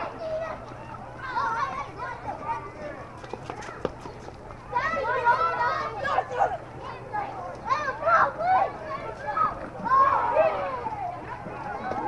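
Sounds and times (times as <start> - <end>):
children calling out: 0.0 - 12.0.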